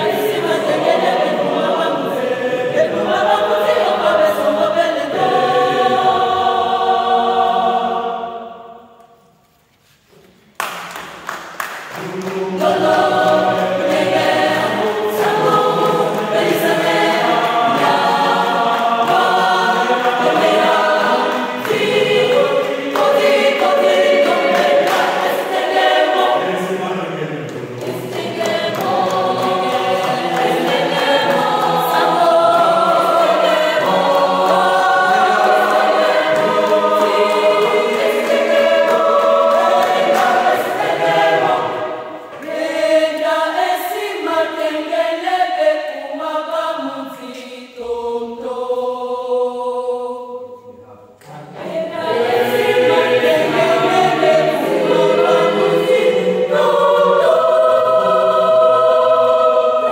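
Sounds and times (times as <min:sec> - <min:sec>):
mixed choir singing a cappella: 0:00.0 - 0:10.0, 0:10.6 - 0:59.9.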